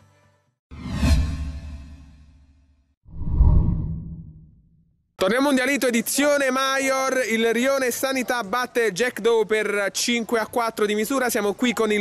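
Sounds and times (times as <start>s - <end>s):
deep whoosh: 3.1s - 4.9s.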